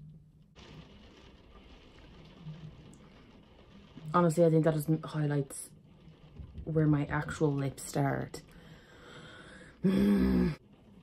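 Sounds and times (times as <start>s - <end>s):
faint rain patter: 0.0s - 11.0s.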